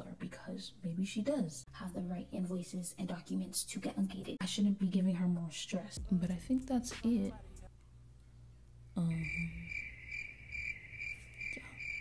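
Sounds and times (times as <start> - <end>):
high-pitched chirping trill: 9.2 - 12.0.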